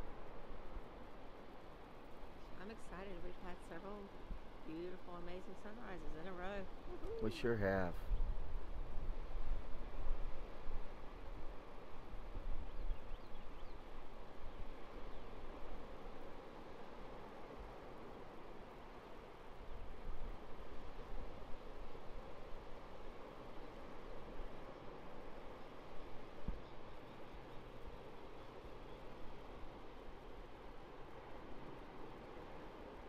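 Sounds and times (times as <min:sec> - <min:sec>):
ocean waves breaking: 0:14.7 - 0:33.0.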